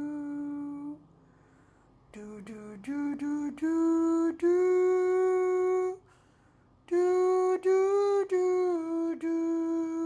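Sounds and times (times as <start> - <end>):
man humming: 0.0 - 1.0.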